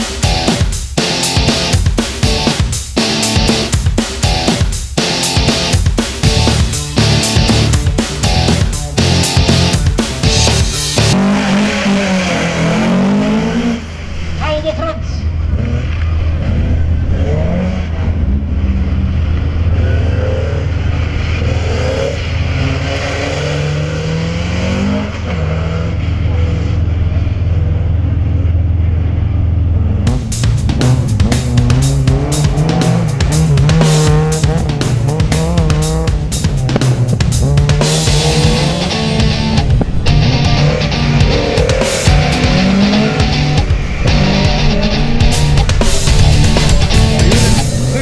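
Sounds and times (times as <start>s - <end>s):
rock music with drums: 0.0s - 11.3s, 30.1s - 48.0s
race car engine revving: 0.2s - 14.4s, 15.2s - 48.0s.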